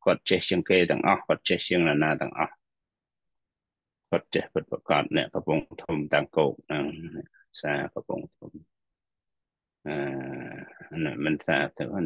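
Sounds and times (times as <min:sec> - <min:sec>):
man speaking: 0:00.0 - 0:02.6, 0:04.1 - 0:08.6, 0:09.8 - 0:12.0.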